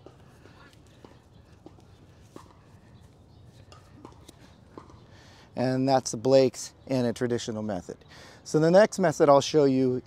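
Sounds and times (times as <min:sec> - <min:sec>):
rope rustling: 0:00.0 - 0:04.8.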